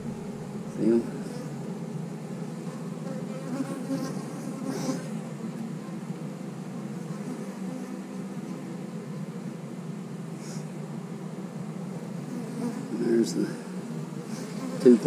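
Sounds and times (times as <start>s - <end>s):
bees buzzing: 0.0s - 15.0s.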